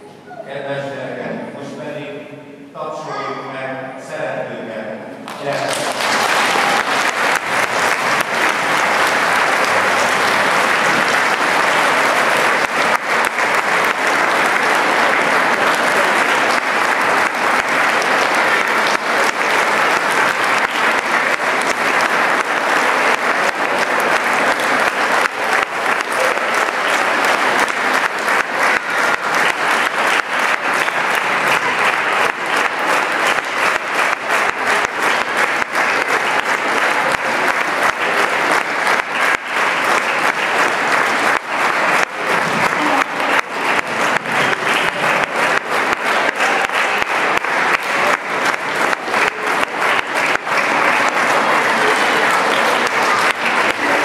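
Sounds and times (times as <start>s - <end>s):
audience applauding: 5.3s - 54.0s.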